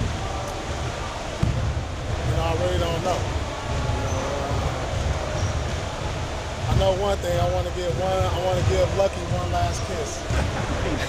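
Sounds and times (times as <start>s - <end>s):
low room noise rumble: 0.0s - 11.0s.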